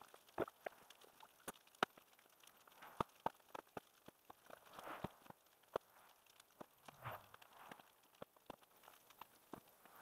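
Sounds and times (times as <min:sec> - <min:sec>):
burning debris crackling: 0:00.0 - 0:10.0.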